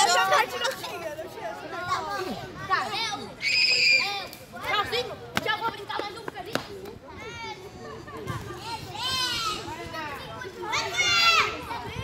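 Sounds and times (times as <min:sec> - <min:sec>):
children shouting and squealing: 0:00.0 - 0:05.7, 0:07.0 - 0:12.0
background chatter: 0:00.0 - 0:12.0.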